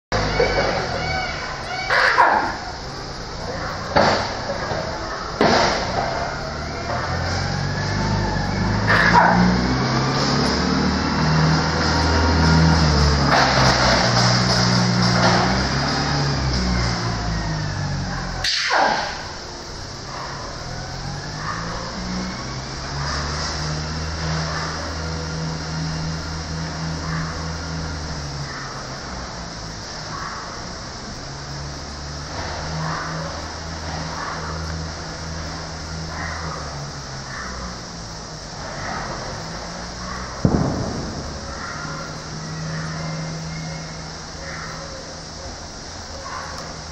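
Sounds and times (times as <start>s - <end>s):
monkey calls: 0.2s - 2.8s.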